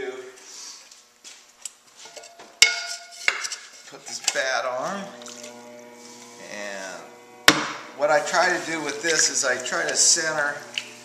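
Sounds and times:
pottery bat knocking: 2.6 - 3.4, 7.5 - 7.8.

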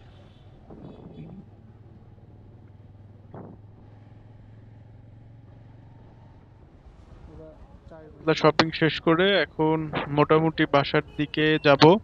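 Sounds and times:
motorcycle engine running: 0.0 - 6.8.

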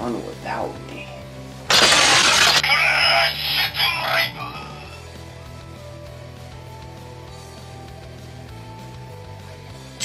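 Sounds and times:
loud crashing burst: 1.7 - 2.7
toy belt electronic sounds and music: 1.7 - 4.6.

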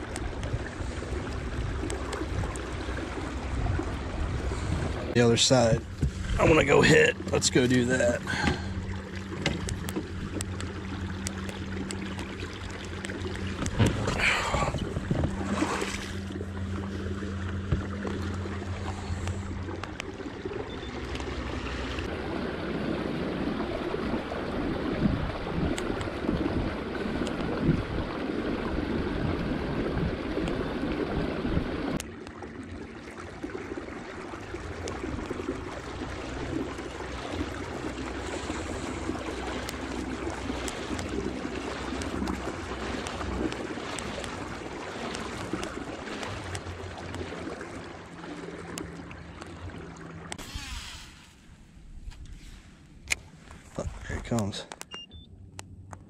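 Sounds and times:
wind on microphone: 0.0 - 6.4, 13.6 - 16.0, 24.5 - 31.9
water rushing along kayak hull: 0.0 - 54.6
low hum: 0.0 - 56.0.

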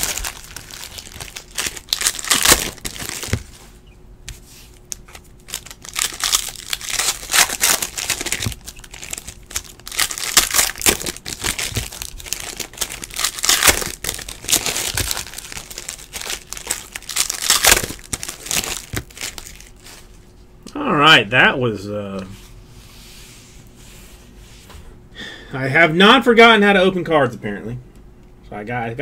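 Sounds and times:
wrappers tearing and crinkling: 0.0 - 3.7, 4.7 - 20.2.

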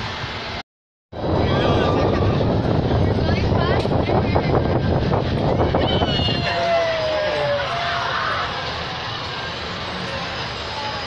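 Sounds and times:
wind on microphone: 1.2 - 6.8.

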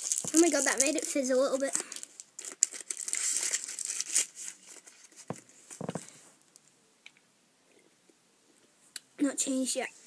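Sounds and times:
plastic wrapper crinkling: 0.0 - 5.4.

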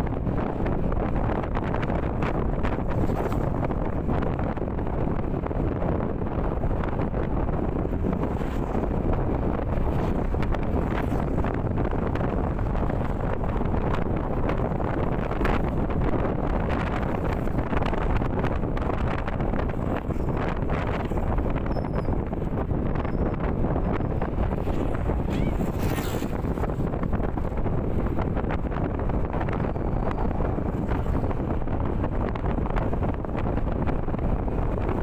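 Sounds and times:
scooter engine and road noise: 0.0 - 35.0
wind rushing on microphone: 0.0 - 35.0.

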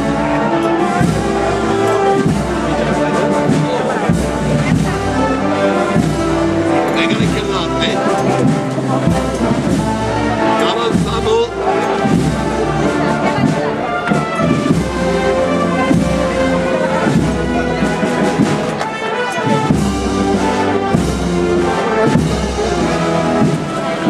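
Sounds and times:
brass band playing a march: 0.0 - 24.0.

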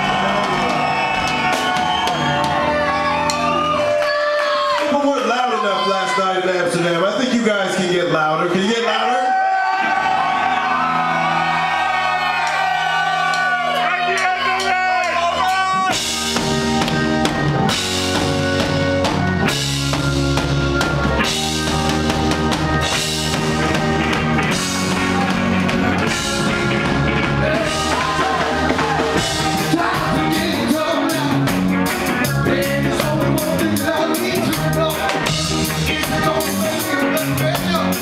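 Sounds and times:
live reggae band playing: 0.0 - 8.8, 9.9 - 38.0.

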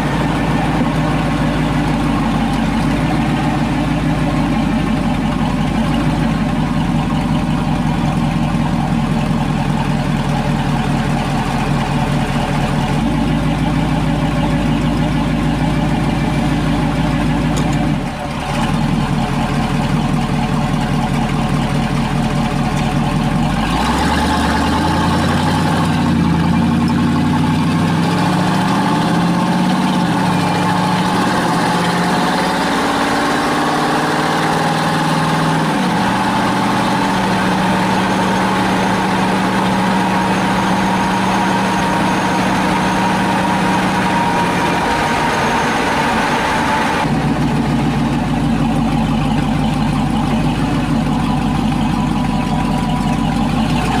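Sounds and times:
pickup truck engine revving: 0.0 - 54.0.

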